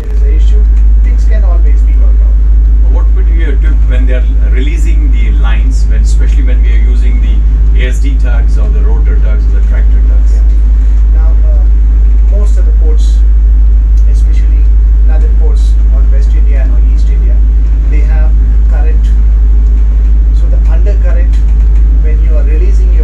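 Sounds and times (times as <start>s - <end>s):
boat engine deep drone: 0.0s - 23.0s
voices: 0.0s - 23.0s.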